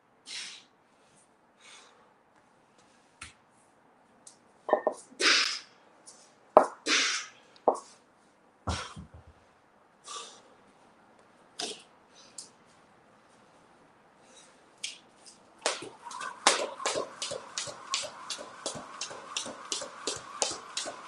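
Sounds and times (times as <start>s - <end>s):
man's sharp hissing exhales: 0.3s - 0.7s.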